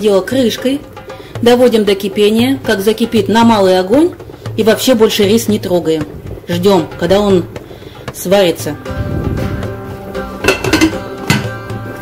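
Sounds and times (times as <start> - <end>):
background music: 0.0 - 12.0
glass pot lid clinking on pan: 10.4 - 11.5.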